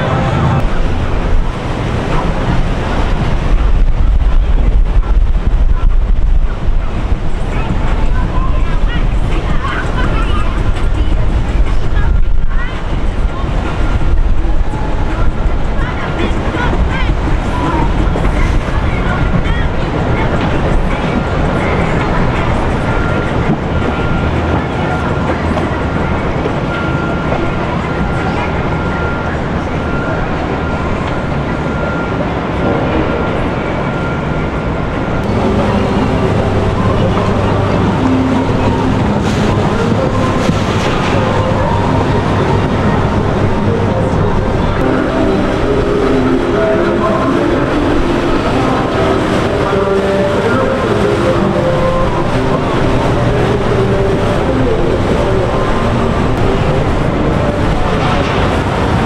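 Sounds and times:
outboard engines running: 0.0 - 59.0
voices chattering: 0.0 - 59.0
water rushing: 0.0 - 59.0.

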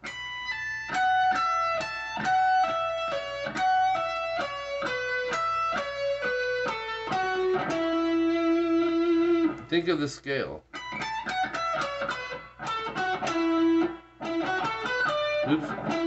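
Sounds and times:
electric guitar solo: 0.0 - 9.7, 10.7 - 16.0.

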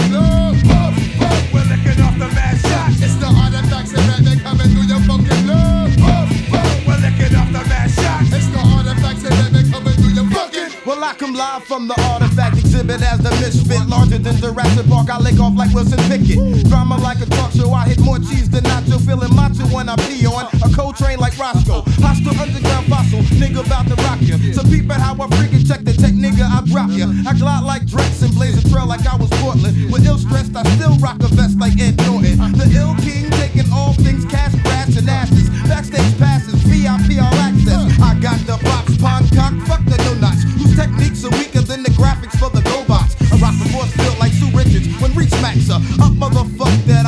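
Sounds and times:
bass line: 0.0 - 10.4, 12.0 - 47.0
man rapping over hip hop beat: 0.0 - 47.0.

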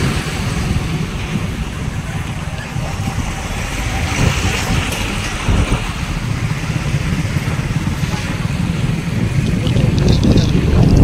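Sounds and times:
road vehicle rumble: 0.0 - 11.0
wind buffeting microphone: 0.0 - 11.0.

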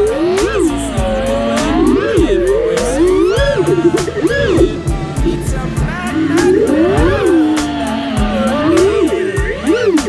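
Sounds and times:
drone motors whining: 0.0 - 10.0
music with steady beat: 0.0 - 10.0.

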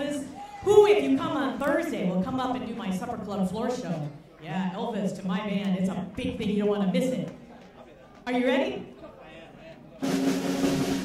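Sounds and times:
snare drum roll: 10.0 - 11.0.

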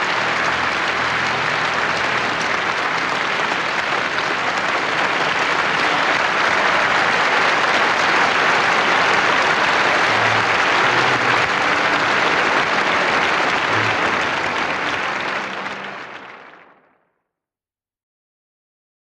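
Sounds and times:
audience applauding: 0.0 - 17.0.

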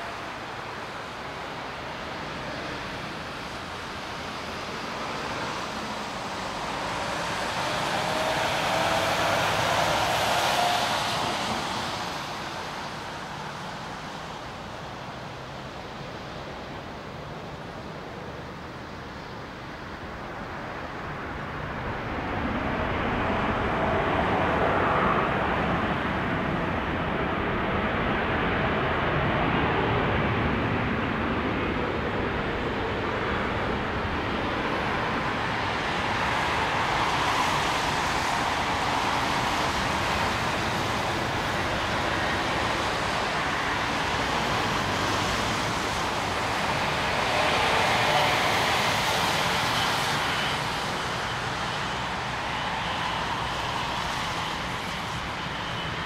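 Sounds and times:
jet engines rushing: 0.0 - 56.0.

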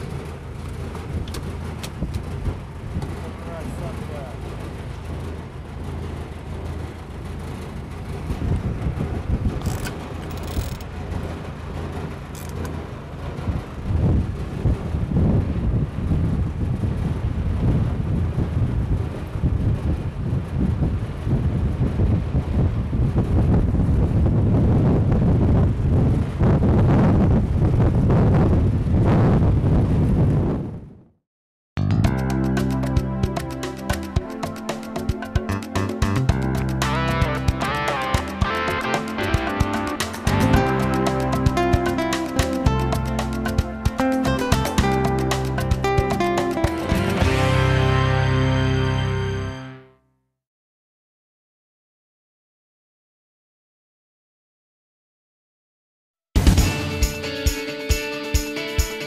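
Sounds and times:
boat engine humming: 0.0 - 22.8, 31.8 - 49.8
water noise: 0.0 - 29.5, 32.0 - 49.2
wind: 0.0 - 31.1, 31.8 - 49.5.

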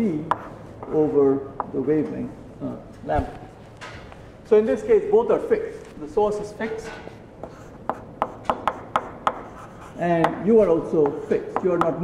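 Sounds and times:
chalk tapping and scraping on blackboard: 0.1 - 1.8, 6.8 - 12.0.

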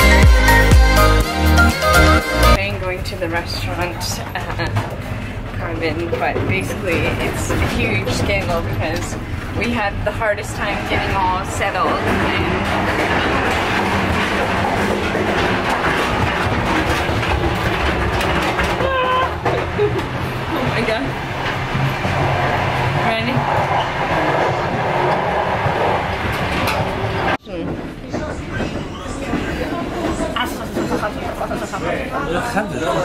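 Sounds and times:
train wheels rumbling on rails: 2.5 - 33.0
low voices: 2.6 - 33.0
rattling: 3.5 - 31.6.

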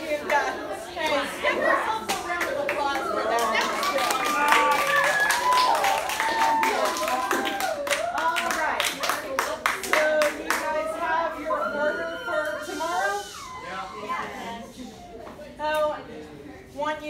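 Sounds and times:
students' voices overlapping: 0.0 - 17.0
hand claps: 3.4 - 10.7.

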